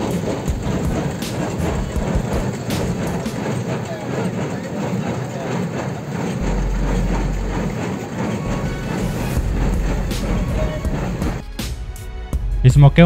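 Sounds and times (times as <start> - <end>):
background music: 0.0 - 4.2, 6.4 - 13.0
baler mechanical knocks: 0.0 - 11.7
tractor engine drone: 0.0 - 12.0.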